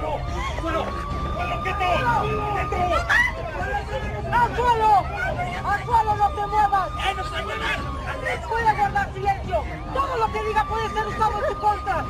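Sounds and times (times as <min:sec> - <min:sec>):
people shouting: 0:00.0 - 0:12.0
police siren wailing: 0:00.0 - 0:12.0.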